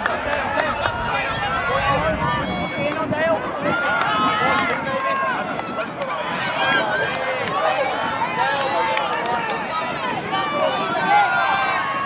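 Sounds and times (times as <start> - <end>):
voices calling out and chattering: 0.0 - 12.0.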